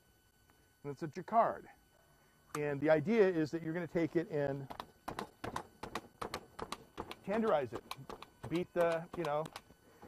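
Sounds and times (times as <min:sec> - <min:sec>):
meat tenderizer clicking: 0:05.8 - 0:09.7.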